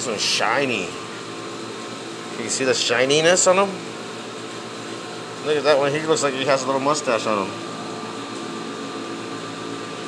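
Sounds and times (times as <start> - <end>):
machinery hum and hiss: 0.0 - 10.0.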